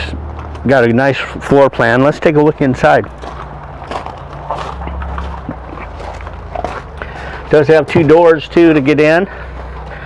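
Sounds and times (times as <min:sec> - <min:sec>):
steady low rumble: 0:00.0 - 0:10.0
footsteps on gravel: 0:02.4 - 0:10.0.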